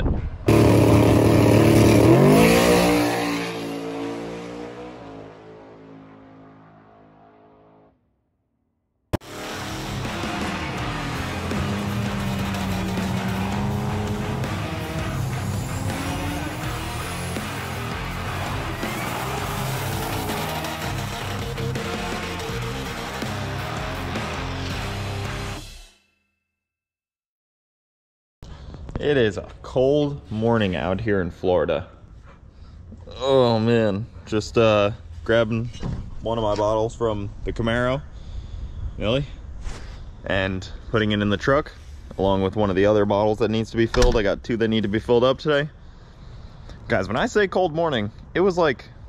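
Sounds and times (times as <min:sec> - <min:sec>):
drag car engine launching: 0:00.5 - 0:03.6, 0:09.2 - 0:22.5
van engine during burnout: 0:00.5 - 0:07.8, 0:09.2 - 0:25.6
music: 0:09.2 - 0:26.0.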